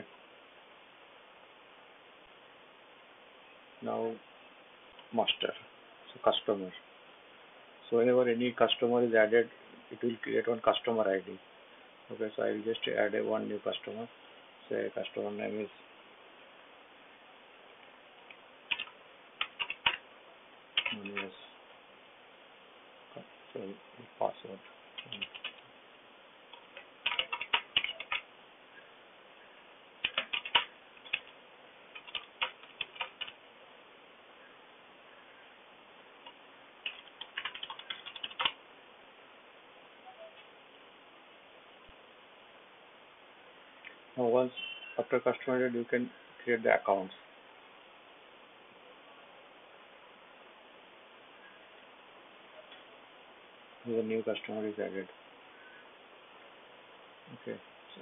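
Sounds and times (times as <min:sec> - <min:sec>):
microphone hiss: 0:00.0 - 0:58.0
man talking: 0:03.8 - 0:04.2, 0:05.1 - 0:06.8, 0:07.9 - 0:11.4, 0:12.1 - 0:15.8, 0:20.9 - 0:21.5, 0:23.5 - 0:25.3, 0:44.2 - 0:47.2, 0:53.8 - 0:55.1, 0:57.3 - 0:58.0
person speaking: 0:12.1 - 0:15.8, 0:20.8 - 0:21.6, 0:23.1 - 0:25.6
keyboard typing: 0:18.7 - 0:20.0, 0:20.8 - 0:21.3, 0:25.0 - 0:25.6, 0:26.5 - 0:28.3, 0:30.0 - 0:31.3, 0:31.9 - 0:33.4, 0:36.2 - 0:38.6.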